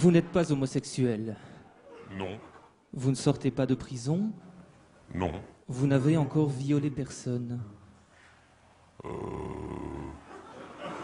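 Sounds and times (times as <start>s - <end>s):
man saying euh: 2.1s - 2.6s, 5.1s - 5.6s, 9.0s - 10.2s.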